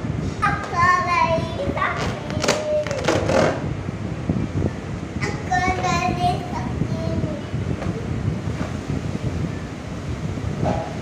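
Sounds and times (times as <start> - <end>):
low rumbling and rustling: 0.0 - 11.0.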